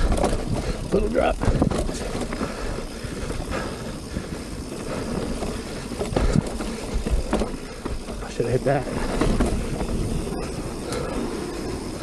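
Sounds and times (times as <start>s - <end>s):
bike knocking over bumps: 0.0s - 11.8s
bike rattling: 0.0s - 12.0s
bike tyres rumbling on dirt: 0.0s - 12.0s
wind on microphone: 8.9s - 12.0s.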